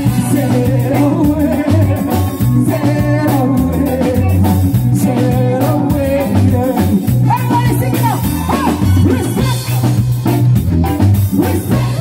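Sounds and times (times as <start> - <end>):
person singing: 0.0 - 9.9, 11.3 - 12.0
live reggae band playing: 0.0 - 12.0
pulsing bass line: 0.0 - 12.0.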